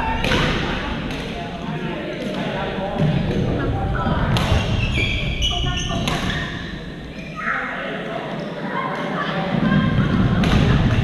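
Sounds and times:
background chatter of players: 0.0 - 11.0.

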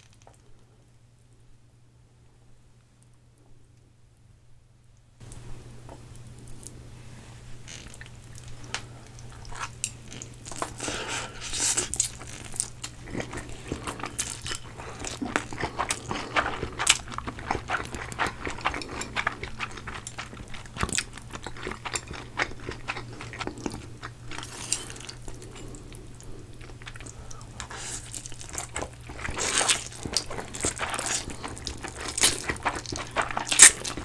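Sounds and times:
people slurping and chewing noodles: 7.7 - 34.0.

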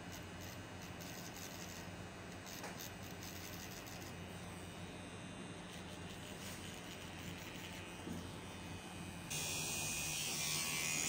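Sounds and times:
tattoo machine buzzing: 0.0 - 11.0.

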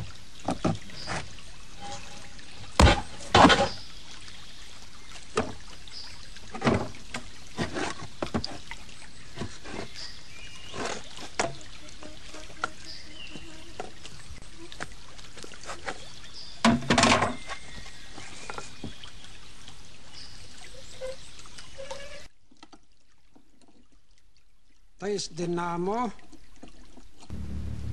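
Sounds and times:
water pouring: 0.0 - 24.4.

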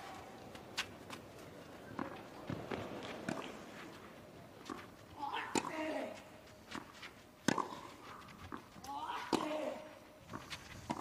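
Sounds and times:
footsteps on clay: 6.0 - 11.0
racket hitting tennis ball: 6.8 - 11.0.

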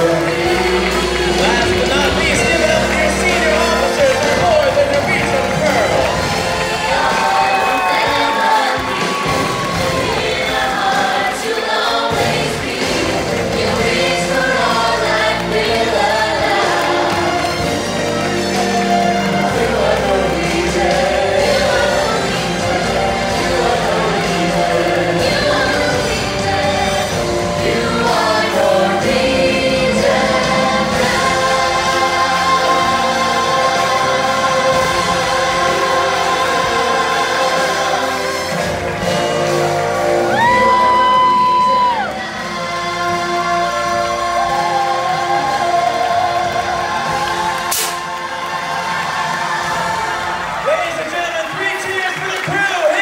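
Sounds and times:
crowd cheering: 0.0 - 25.8, 31.0 - 53.0
singers holding a long note: 0.0 - 51.3
amplified backing music: 0.0 - 53.0.

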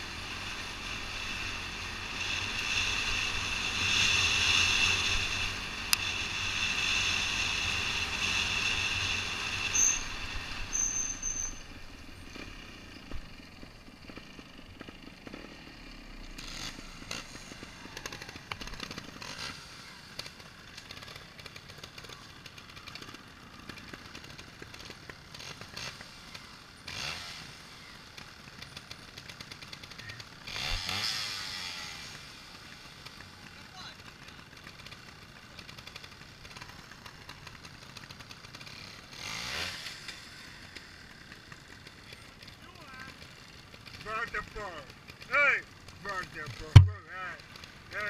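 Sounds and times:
motorcycle engine revving: 0.0 - 48.0
tyres on gravel: 40.7 - 48.0.

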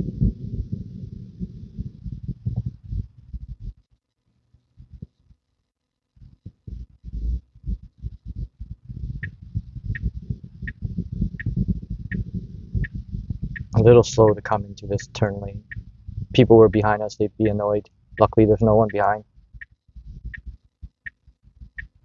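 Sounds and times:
low thumps: 6.5 - 21.8
turn signal ticking: 9.2 - 17.6, 18.2 - 22.0.

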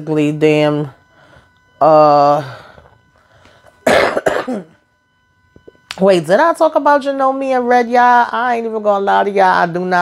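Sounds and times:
woman coughing: 3.8 - 4.8.

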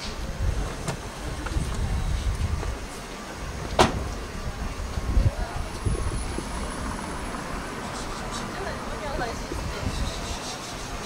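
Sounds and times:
faint voices of passers-by: 0.0 - 11.0
low street rumble: 0.0 - 11.0.

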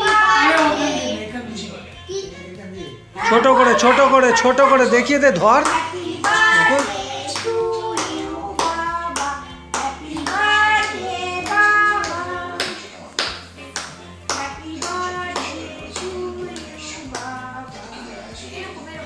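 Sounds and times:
rhythmic hand clapping: 0.0 - 1.0, 4.8 - 18.2
person singing: 3.2 - 13.1, 14.3 - 19.0.

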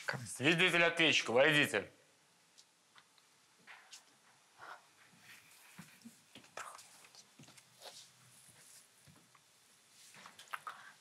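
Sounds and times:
faint whispering: 4.6 - 7.2, 10.4 - 11.0
soft footsteps on hard floor: 5.0 - 10.5.

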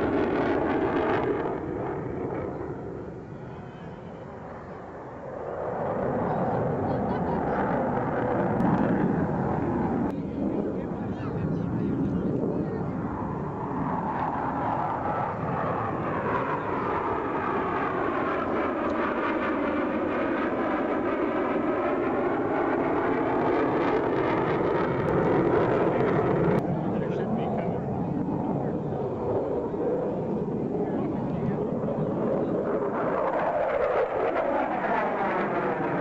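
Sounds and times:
jet engines passing by: 0.0 - 36.0.

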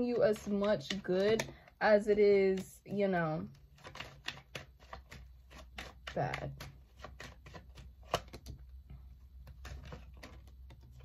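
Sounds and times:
cards shuffling: 0.0 - 2.9, 3.5 - 11.0.

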